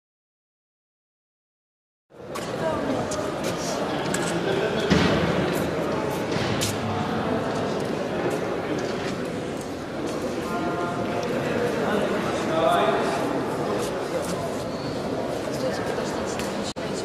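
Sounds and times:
voices echoing in a hall: 2.2s - 17.0s
thud: 4.8s - 5.5s, 6.3s - 6.9s.

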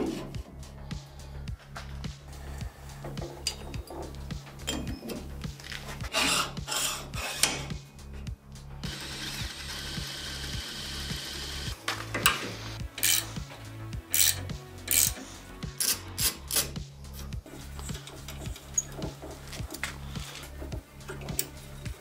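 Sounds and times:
metal rubbing and scraping: 0.0s - 0.8s, 1.9s - 8.2s, 12.1s - 22.0s
background music: 0.0s - 22.0s.

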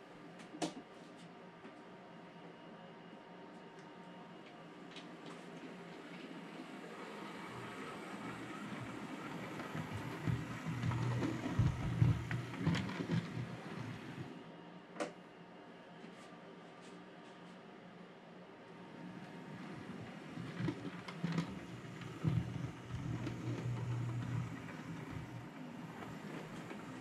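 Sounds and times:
model train running on track: 6.3s - 14.3s, 19.8s - 27.0s.

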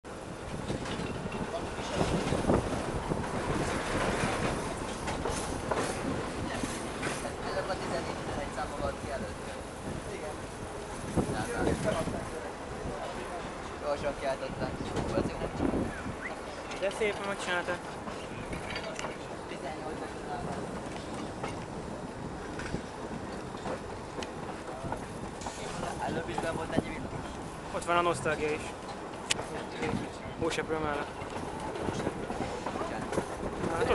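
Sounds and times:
tram wheels rumbling on track: 0.0s - 33.9s
clicks from rail joints: 0.5s - 8.2s, 16.3s - 19.3s, 20.4s - 27.5s, 28.3s - 30.2s, 30.8s - 33.9s.

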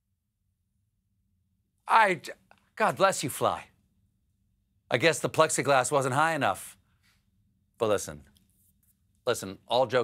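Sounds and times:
man speaking: 1.9s - 3.7s, 4.9s - 6.8s, 7.8s - 8.4s, 9.2s - 10.0s.

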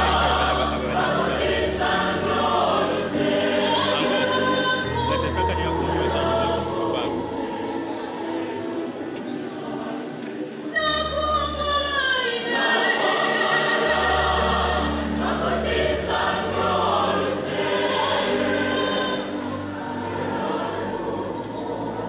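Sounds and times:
choir singing gospel song: 0.0s - 22.0s.

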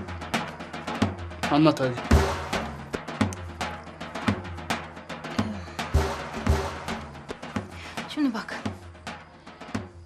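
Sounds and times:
drum hits: 0.0s - 10.0s.

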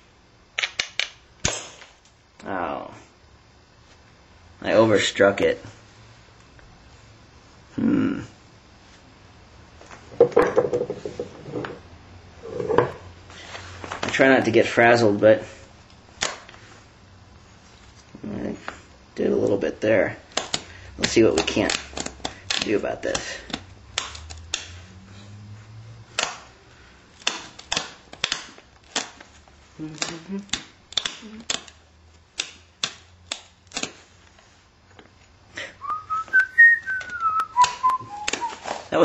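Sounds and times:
stone knocking: 10.2s - 11.8s.

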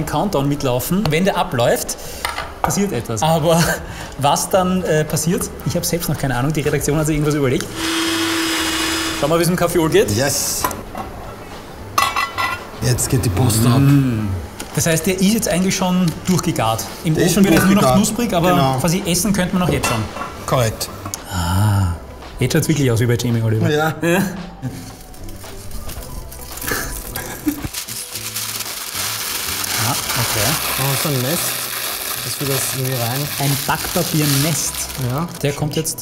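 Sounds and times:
baking paper crumpling: 25.0s - 35.6s.

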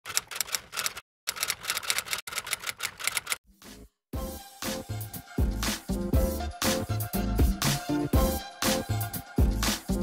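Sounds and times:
typewriter keystrokes clicking: 0.0s - 3.4s.

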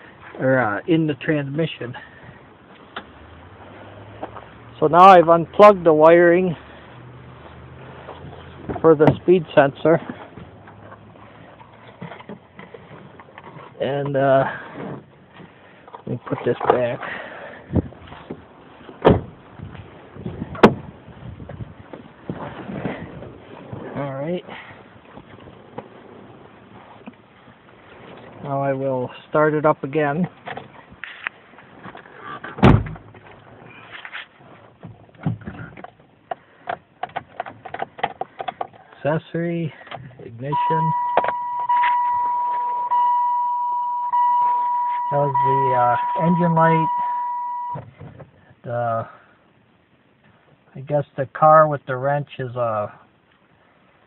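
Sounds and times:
rustling and handling noise: 6.7s - 28.6s, 39.7s - 47.2s
car warning chime beeping: 40.5s - 47.8s.

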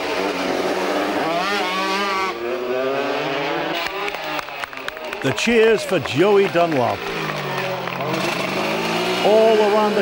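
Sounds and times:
two-stroke motorcycle engine running: 5.8s - 10.0s.

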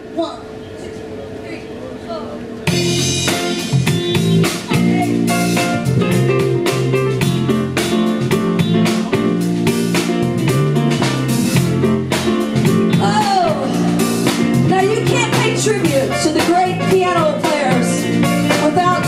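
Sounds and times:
drum kit: 2.6s - 19.0s
piano: 2.6s - 19.0s
electric guitar: 2.7s - 19.0s.

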